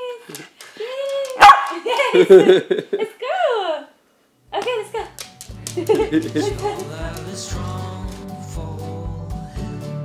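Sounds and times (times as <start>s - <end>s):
dog barking: 1.4s - 1.8s.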